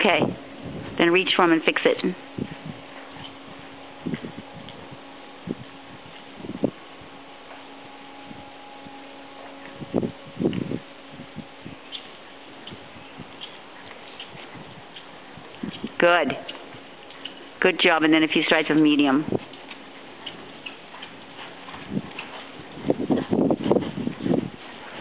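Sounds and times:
horse hooves thudding on soft footing: 0:00.0 - 0:25.0
steady low hum: 0:00.0 - 0:25.0.

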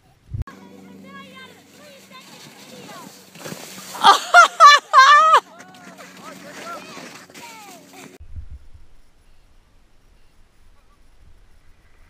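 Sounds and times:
faint children's voices: 0:00.5 - 0:03.3, 0:05.5 - 0:08.2
young child shrieking: 0:04.0 - 0:05.4.

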